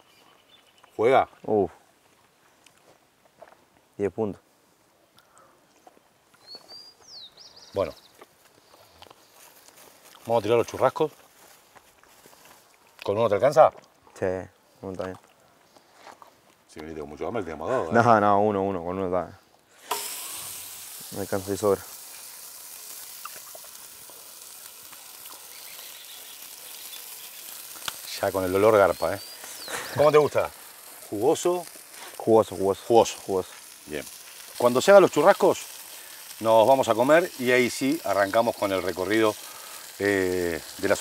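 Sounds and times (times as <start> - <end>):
steaks sizzling in frying: 6.4 - 13.3, 19.7 - 41.0.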